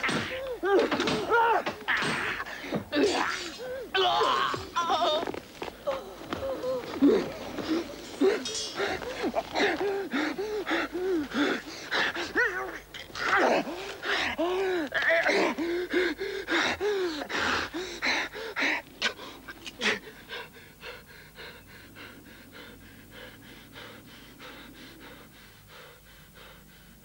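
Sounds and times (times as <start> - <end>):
man panting hard: 6.2 - 12.9, 13.6 - 27.0.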